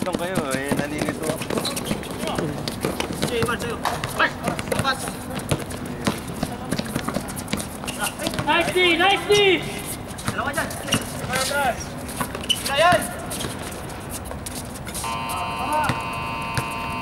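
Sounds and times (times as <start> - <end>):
basketball dribbling: 0.0 - 17.0
footsteps on hard court: 0.0 - 17.0
voices calling: 0.0 - 17.0.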